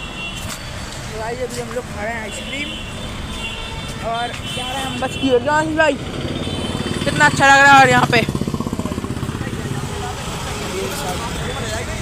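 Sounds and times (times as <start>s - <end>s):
road traffic rumble: 0.0s - 12.0s
voices: 1.0s - 12.0s.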